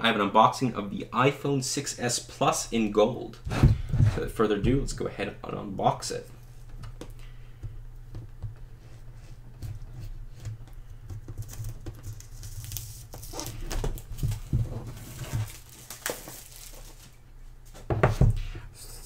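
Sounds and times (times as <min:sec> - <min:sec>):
low steady hum: 0:00.0 - 0:19.0
hands handling cardboard box: 0:08.1 - 0:17.1
plastic wrap crinkling: 0:11.2 - 0:17.2.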